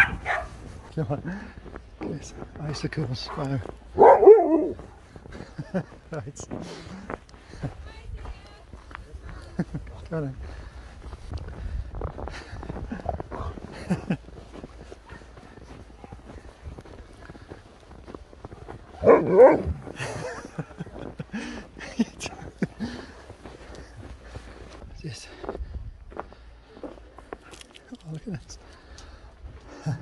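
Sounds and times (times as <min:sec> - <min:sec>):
husky vocalising: 0:04.0 - 0:04.8, 0:19.0 - 0:19.9.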